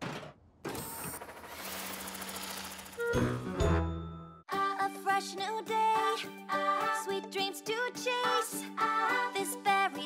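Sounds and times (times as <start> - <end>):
cartoon mechanical whir: 0.6 - 3.4.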